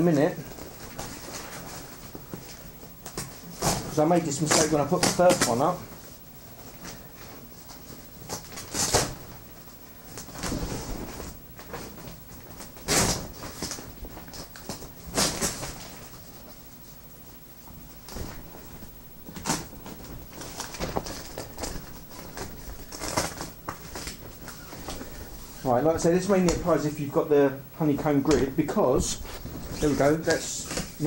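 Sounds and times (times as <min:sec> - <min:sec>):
nylon fabric rustling: 0:17.8 - 0:26.9, 0:28.2 - 0:31.0.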